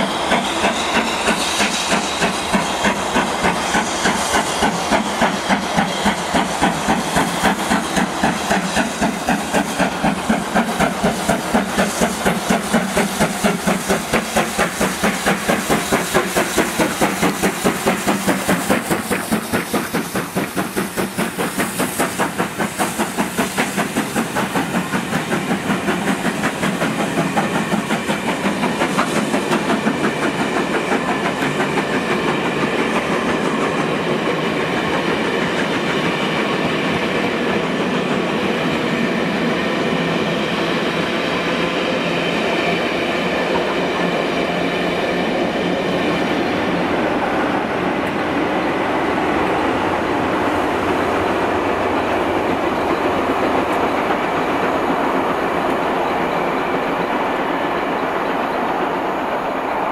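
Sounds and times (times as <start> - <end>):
steam hissing: 0.0 - 59.9
steam locomotive exhaust beats: 0.0 - 59.9
train coaches rolling by: 0.0 - 59.9.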